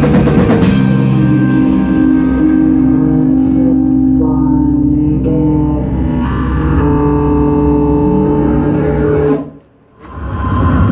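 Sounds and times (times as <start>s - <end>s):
electric guitar: 0.0s - 9.8s
bass guitar: 0.0s - 10.9s.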